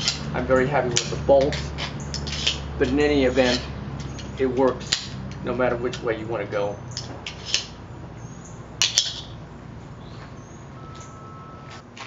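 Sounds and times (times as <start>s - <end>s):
steady low background noise: 0.0s - 12.0s
sharp metallic clicks of trowel: 1.0s - 5.2s
faint high chirps: 9.9s - 11.8s.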